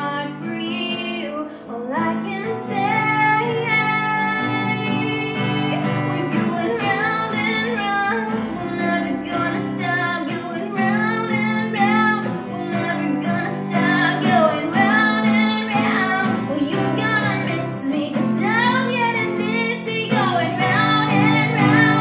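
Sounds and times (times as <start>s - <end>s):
acoustic guitar: 0.0s - 22.0s
woman singing pop melody: 0.0s - 22.0s.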